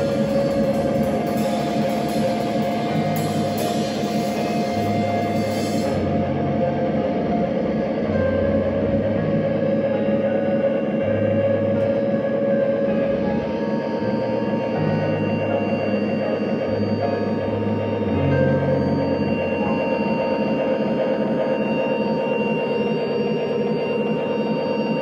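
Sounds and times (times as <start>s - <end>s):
bass line: 0.0s - 21.0s
ringing electric guitar: 0.0s - 25.0s.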